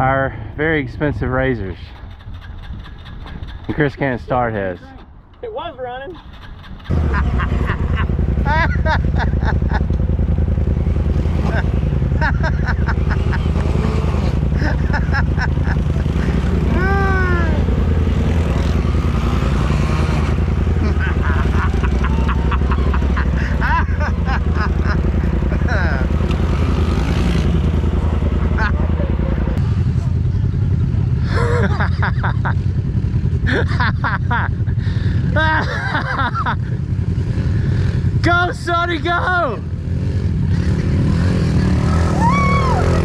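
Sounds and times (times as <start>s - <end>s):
engines idling: 0.0s - 43.0s
people calling out: 16.6s - 17.8s, 20.8s - 24.9s, 41.8s - 43.0s.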